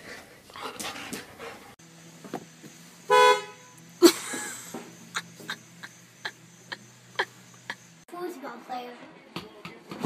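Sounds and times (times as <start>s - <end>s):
car horn toot: 3.1s - 3.8s.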